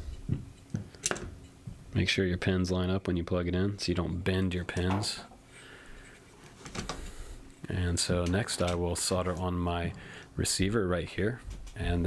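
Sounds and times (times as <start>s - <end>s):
soft handling sounds: 3.8s - 12.0s.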